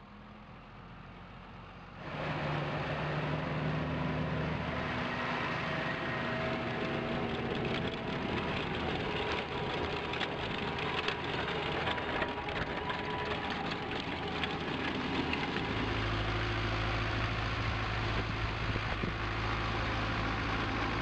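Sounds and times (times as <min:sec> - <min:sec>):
diesel tractor engine drone: 0:00.0 - 0:21.0
tractor wheels rolling through soil: 0:01.0 - 0:21.0.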